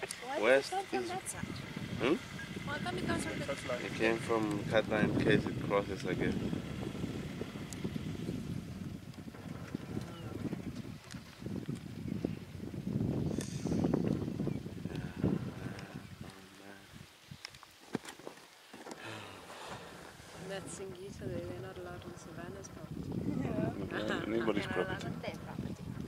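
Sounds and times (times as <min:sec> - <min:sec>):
low outdoor rumble: 0:00.0 - 0:11.8, 0:19.8 - 0:26.0.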